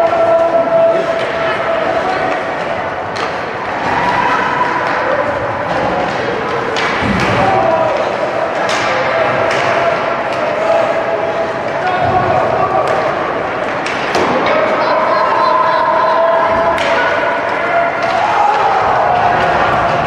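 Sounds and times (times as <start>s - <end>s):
spectators calling and talking: 0.0s - 20.0s.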